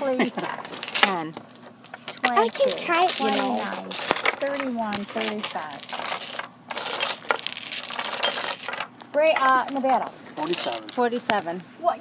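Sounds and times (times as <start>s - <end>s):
domino tiles clicking on a table: 2.1s - 11.4s.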